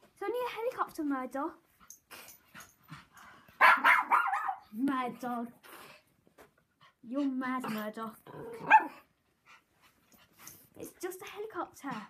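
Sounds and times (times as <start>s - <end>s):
puppy barking: 3.6s - 4.7s, 8.6s - 9.0s.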